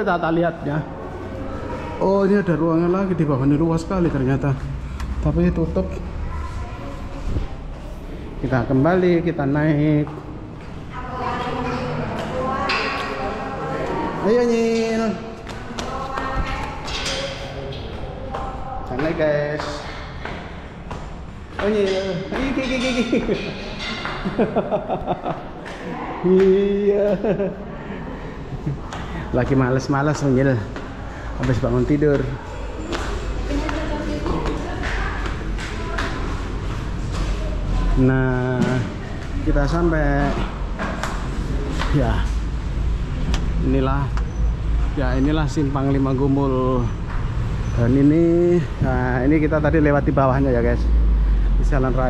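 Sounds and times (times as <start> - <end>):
echoing indistinct talking: 0.0 - 52.0
footsteps on tiled floor: 1.0 - 27.4, 28.2 - 46.3.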